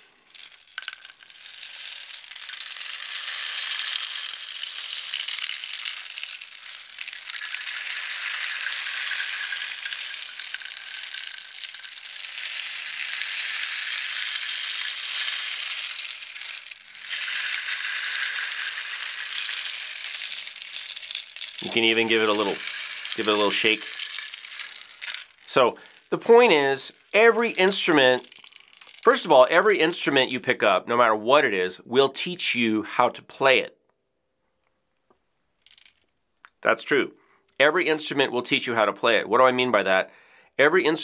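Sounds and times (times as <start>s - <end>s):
rain stick trickling: 0.0s - 29.6s, 35.6s - 36.6s.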